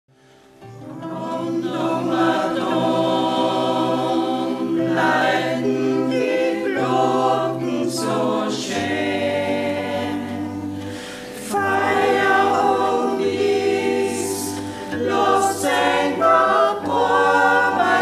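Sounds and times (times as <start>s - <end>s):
choir singing folk song: 0.7s - 18.0s.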